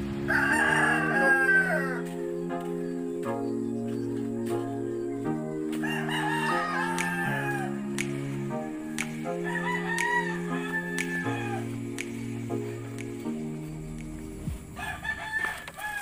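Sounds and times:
music of held notes: 0.0s - 14.8s
rooster crowing: 0.2s - 2.2s, 5.7s - 7.9s, 9.4s - 11.8s, 14.6s - 16.0s.

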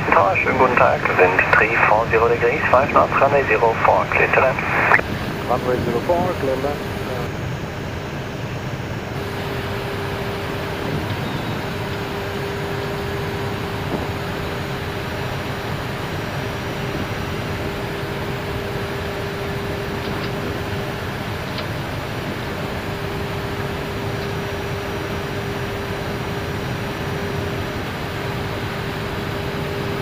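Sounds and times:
aircraft engine noise: 0.0s - 30.0s
airflow rushing in cockpit: 0.0s - 30.0s
faint steady hum: 0.0s - 30.0s.

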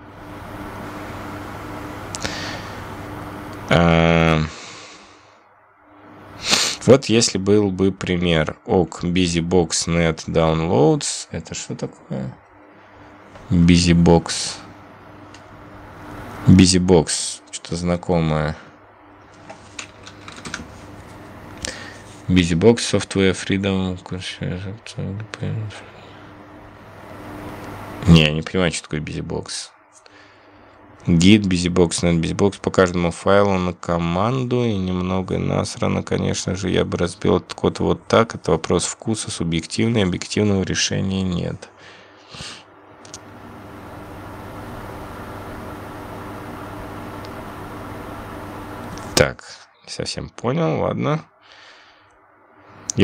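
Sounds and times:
low hum: 0.0s - 38.1s, 42.7s - 49.2s
steady droning noise: 0.0s - 53.0s.

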